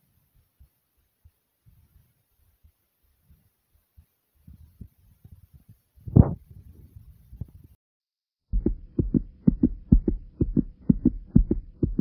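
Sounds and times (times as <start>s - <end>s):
fast heartbeat: 8.5s - 12.0s.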